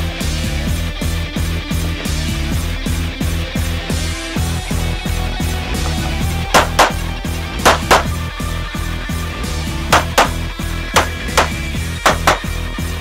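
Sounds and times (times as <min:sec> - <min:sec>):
pistol shots: 0:06.6 - 0:07.0, 0:07.7 - 0:08.1, 0:10.0 - 0:10.4, 0:11.0 - 0:12.5.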